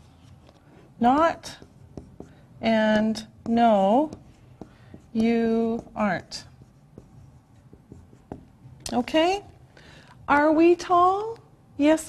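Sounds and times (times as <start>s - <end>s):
woman's voice: 8.9s - 9.5s, 10.3s - 12.0s.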